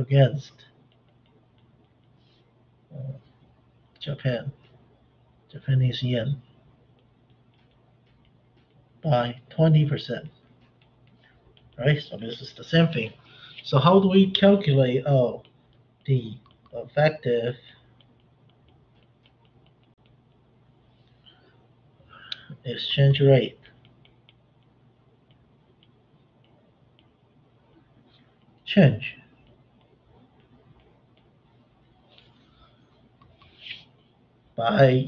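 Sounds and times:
stylus tapping on tablet screen: 0.8s - 2.4s, 6.9s - 9.0s, 10.4s - 12.5s, 15.4s - 16.8s, 17.9s - 20.6s.

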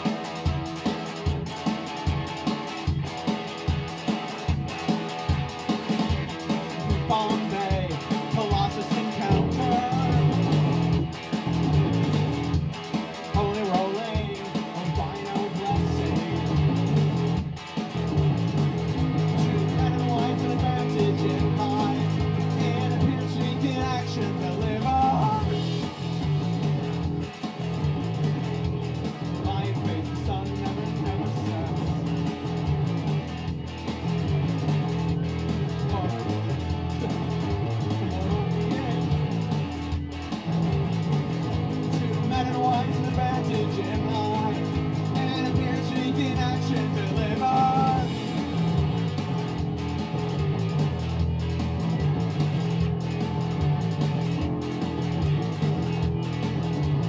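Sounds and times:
backing track with drum beat: 0.0s - 57.0s
electric guitar: 0.0s - 57.0s.

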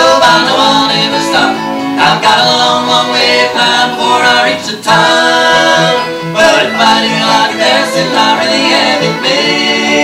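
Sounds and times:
acoustic guitar: 0.0s - 10.0s
mandolin: 0.0s - 10.0s
men singing in harmony: 0.0s - 10.0s.

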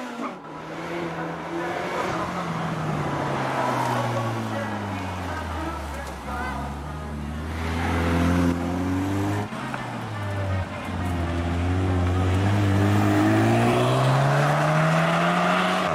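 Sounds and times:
car engines revving: 0.0s - 15.9s
car engine accelerating away: 6.9s - 15.9s.

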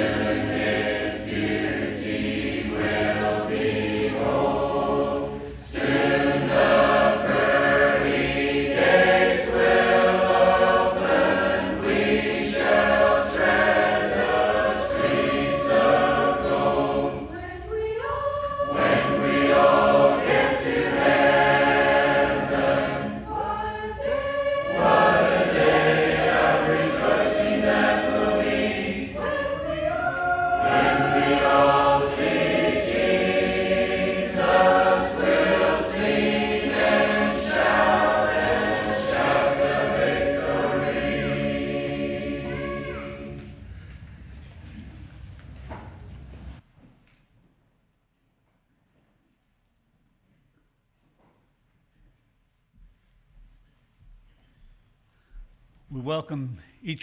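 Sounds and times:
congregation singing a hymn: 0.0s - 44.0s.

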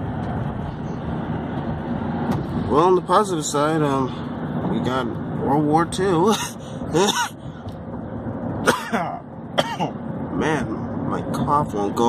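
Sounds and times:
car road noise: 0.0s - 12.0s
man coughing: 6.3s - 7.4s, 8.6s - 10.0s.

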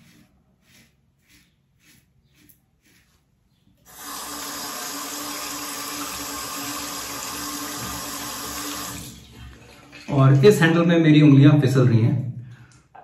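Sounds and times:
razor rinsed under water: 0.0s - 3.3s, 3.9s - 10.6s
tap running into a sink: 5.8s - 10.1s.

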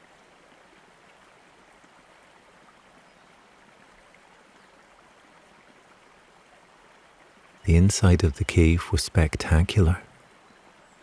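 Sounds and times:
running water rushing: 0.0s - 10.2s.

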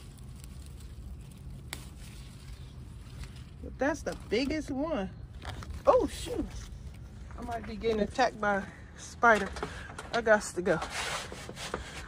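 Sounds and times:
tomato plant leaves rustling: 0.0s - 12.0s.

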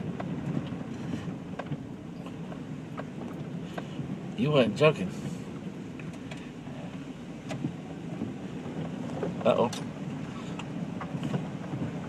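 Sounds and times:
engine and tyre rumble: 0.0s - 12.0s.

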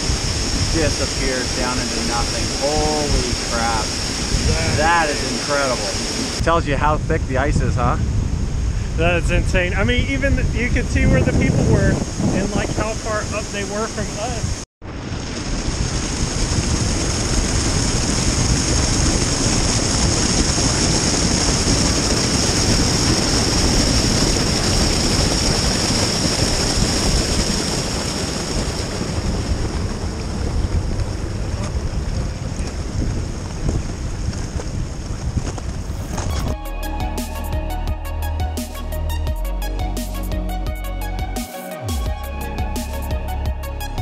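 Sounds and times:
meltwater stream rushing: 0.0s - 6.4s
music: 36.1s - 44.0s.

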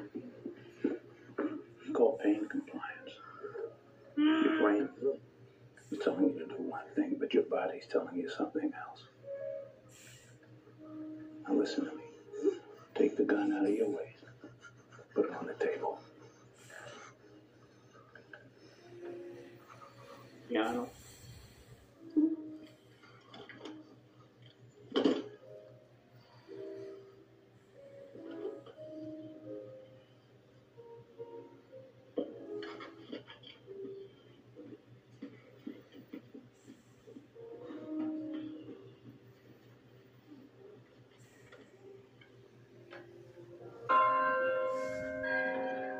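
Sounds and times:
low held music tones: 0.0s - 45.9s
large church bell ringing: 43.9s - 45.9s.

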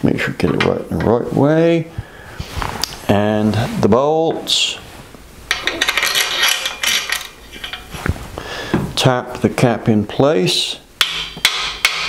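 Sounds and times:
metal bolts clinking: 5.5s - 8.0s.

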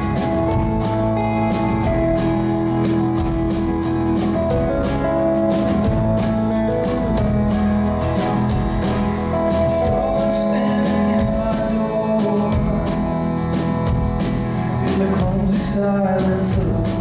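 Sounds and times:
drums and cymbals: 0.0s - 17.0s
strummed acoustic guitar: 0.0s - 17.0s.

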